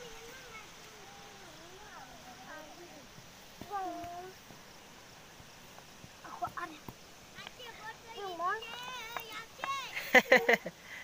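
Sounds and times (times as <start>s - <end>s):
young children's voices: 0.0s - 4.4s, 6.2s - 10.3s.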